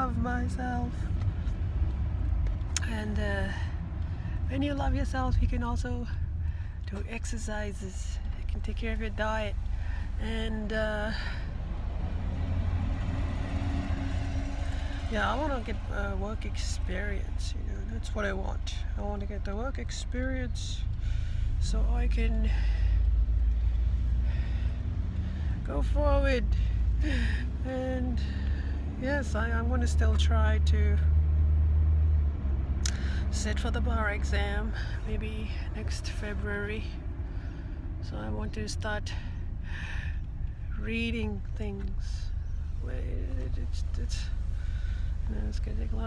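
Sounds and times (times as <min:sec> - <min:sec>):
engine and road rumble: 0:00.0 - 0:46.0.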